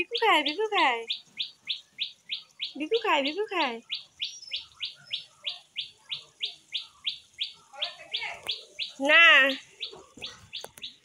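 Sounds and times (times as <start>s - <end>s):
bird chirping high: 0.0s - 11.0s.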